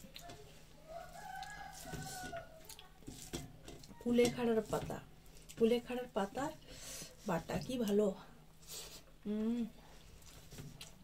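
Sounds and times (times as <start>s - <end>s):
rooster crowing: 0.8s - 2.7s.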